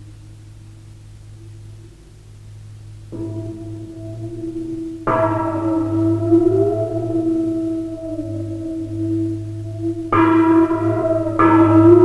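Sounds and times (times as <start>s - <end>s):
low sustained tone: 0.0s - 12.0s
ringing bell-like chimes: 3.2s - 12.0s.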